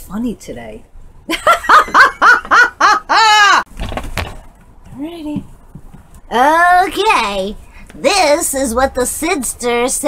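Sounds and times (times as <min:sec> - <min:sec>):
woman laughing loudly: 0:01.3 - 0:03.7.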